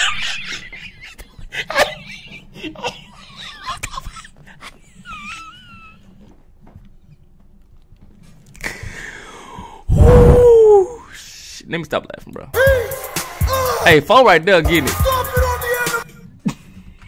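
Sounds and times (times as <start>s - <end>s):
man laughing uncontrollably: 0.0s - 6.2s.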